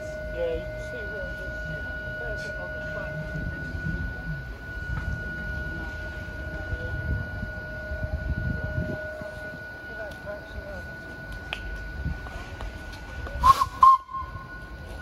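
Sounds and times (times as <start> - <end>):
thin steady high tone: 0.0 - 15.0
steam whistle toot: 13.4 - 14.7.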